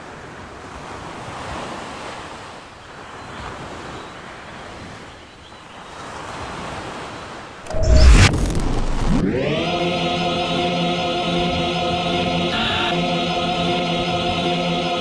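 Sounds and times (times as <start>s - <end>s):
wind: 0.0s - 9.3s
loud low boom: 7.7s - 9.7s.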